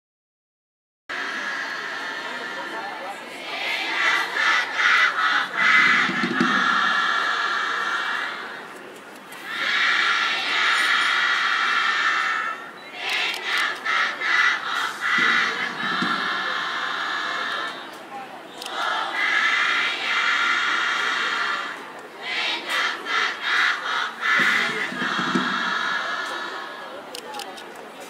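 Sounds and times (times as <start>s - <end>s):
young voices chanting a cheer: 1.1s - 8.8s, 9.4s - 27.0s.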